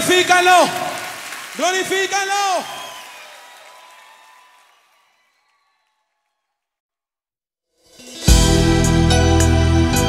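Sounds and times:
congregation applause: 0.0s - 6.6s.

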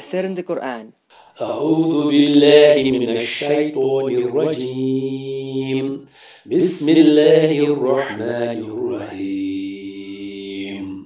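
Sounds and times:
man chanting: 1.4s - 11.0s.

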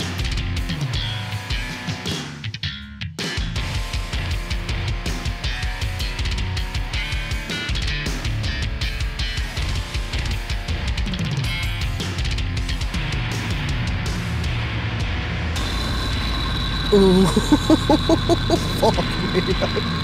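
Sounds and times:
electric guitars: 0.0s - 20.0s
heavy metal song: 3.3s - 17.0s.

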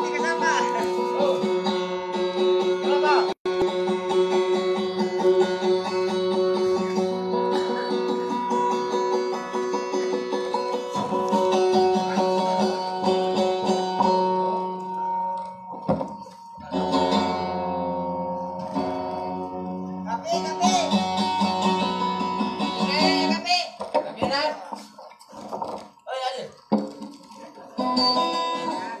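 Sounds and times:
guitar picked melody: 0.0s - 23.8s, 27.6s - 29.0s.

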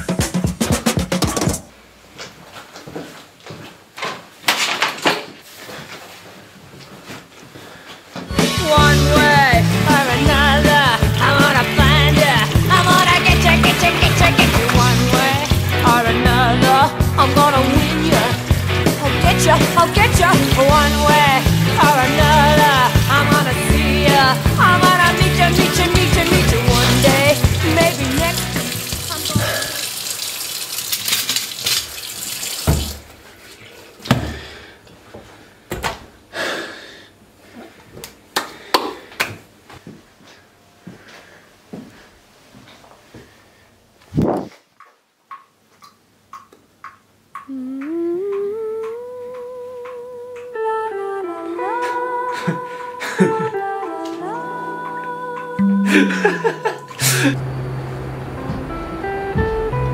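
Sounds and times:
song with heavy bass beat: 8.4s - 28.7s
person humming: 8.4s - 29.9s, 47.4s - 57.4s
tap running into sink: 24.7s - 33.1s.

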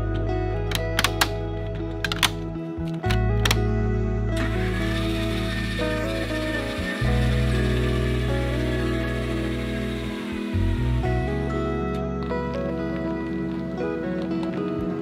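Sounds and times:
background music: 0.0s - 15.0s
plastic lid latches snapping shut: 0.7s - 1.4s, 2.0s - 3.6s
electric motor hum: 4.4s - 11.9s.

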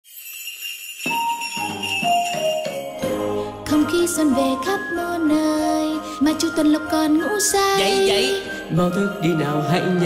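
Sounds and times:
small bells jingling in music: 0.0s - 10.0s
instrumental melody: 0.1s - 10.0s.

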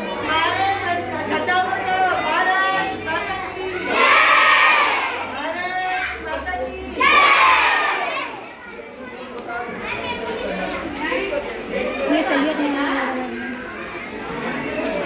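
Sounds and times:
chatter of voices: 0.0s - 15.0s
children shouting together: 2.1s - 10.8s.

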